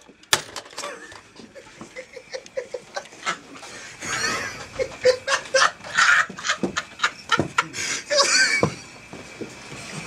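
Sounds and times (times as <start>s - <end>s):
people laughing and hollering: 1.5s - 8.8s.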